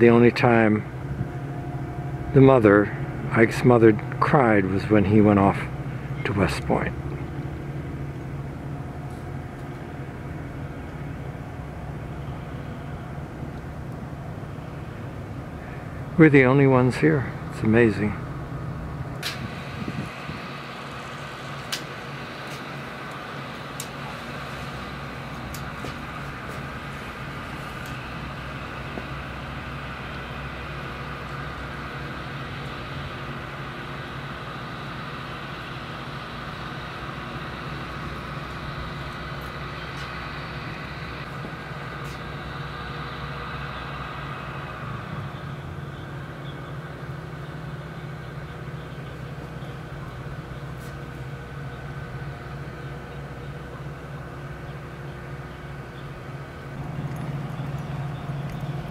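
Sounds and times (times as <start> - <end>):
low mechanical hum: 0.0 - 58.9.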